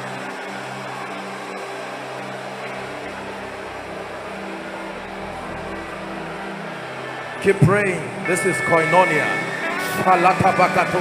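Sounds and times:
low sustained chords: 0.0 - 11.0
congregation praying aloud: 7.3 - 11.0.

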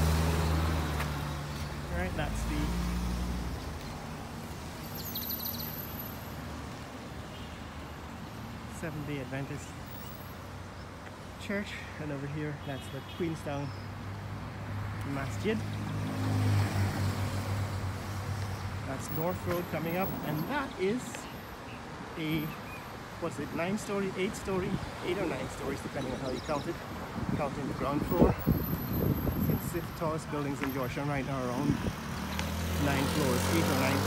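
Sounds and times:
car engine and road noise: 0.0 - 34.0.

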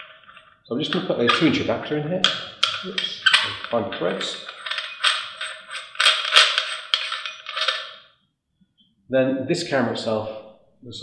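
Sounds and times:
metal threads scraping and clicking: 2.2 - 8.0.

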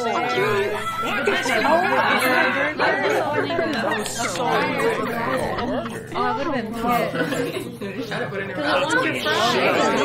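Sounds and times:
people chattering and laughing: 0.0 - 10.0.

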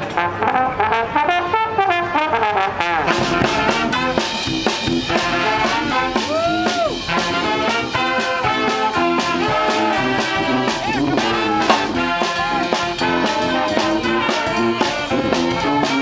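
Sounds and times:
brass band playing: 0.0 - 16.0
snare and bass drum: 3.0 - 16.0.

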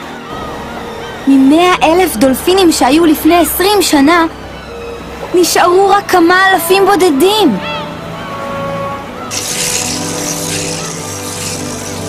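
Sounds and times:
background music: 0.0 - 12.0
rushing water: 9.2 - 12.0.

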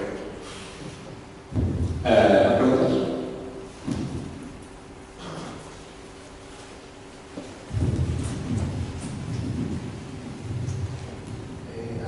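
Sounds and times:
low uneven rumbling: 0.0 - 12.0.

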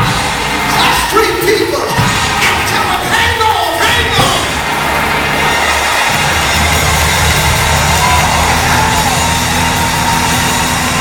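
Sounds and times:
drums: 0.0 - 11.0
live gospel band music: 0.0 - 11.0
sustained bass line: 0.0 - 11.0.

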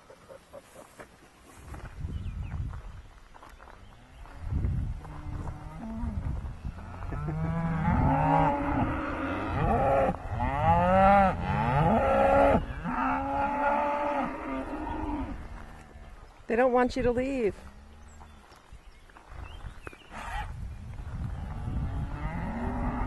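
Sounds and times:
cattle mooing: 6.9 - 15.4, 22.1 - 23.0.

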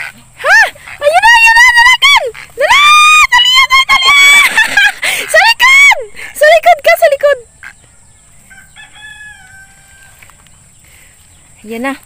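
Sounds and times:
rooster crowing: 8.4 - 10.4.

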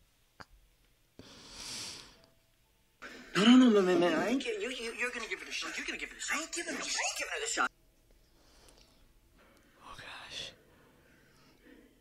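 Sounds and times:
person whispering: 9.8 - 10.6.

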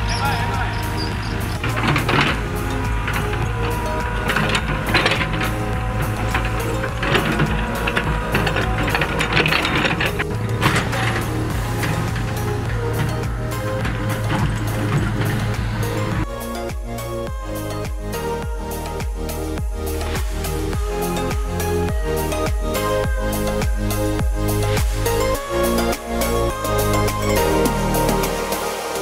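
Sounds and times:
excavator running and clanking: 0.0 - 17.8
background music: 0.0 - 29.0.

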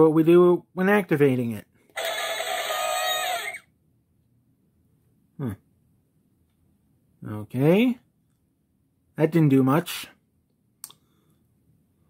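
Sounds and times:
toy playing musical sound effect: 2.0 - 3.6.

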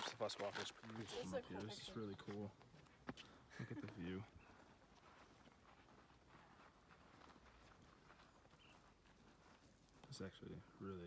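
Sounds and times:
footsteps on rocky trail: 0.0 - 10.8.

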